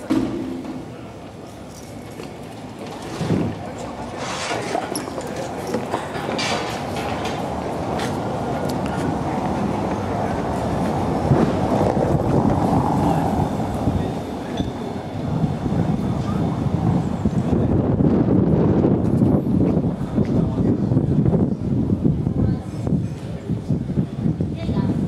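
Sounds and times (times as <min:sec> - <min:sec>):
van tyres rumbling over cobblestones: 0:00.0 - 0:23.0.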